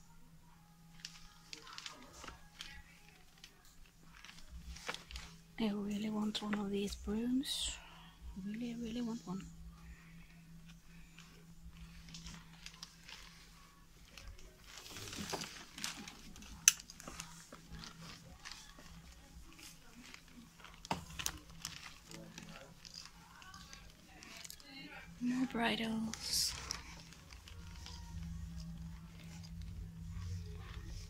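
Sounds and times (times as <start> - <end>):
faint background voices: 0.0 - 31.0
steady low hum: 0.0 - 31.0
rustling handling noise: 0.8 - 31.0.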